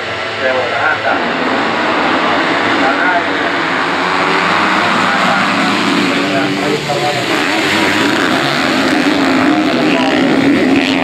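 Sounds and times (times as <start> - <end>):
motorcycle engines revving: 0.0 - 11.0.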